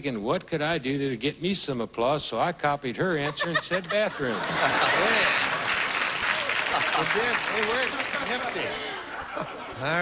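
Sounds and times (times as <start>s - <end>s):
audience applauding: 4.4s - 9.4s.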